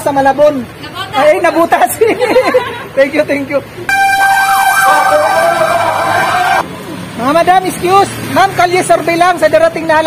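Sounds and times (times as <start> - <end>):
warbling electronic siren tone: 3.9 - 6.6.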